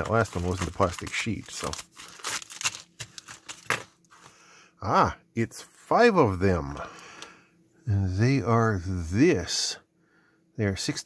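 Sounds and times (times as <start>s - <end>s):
plastic packaging crinkling: 0.0s - 4.2s.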